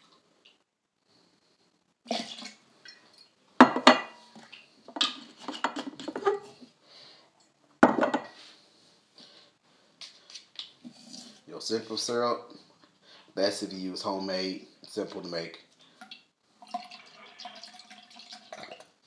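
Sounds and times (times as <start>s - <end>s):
glass bottles clinking on countertop: 3.6s - 4.2s, 7.8s - 8.4s.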